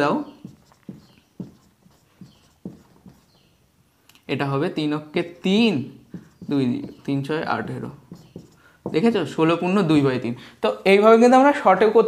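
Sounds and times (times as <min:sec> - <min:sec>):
marker scratching on whiteboard: 0:00.0 - 0:03.6, 0:05.2 - 0:10.2
marker tip knocking whiteboard: 0:00.4 - 0:03.5, 0:06.0 - 0:09.4.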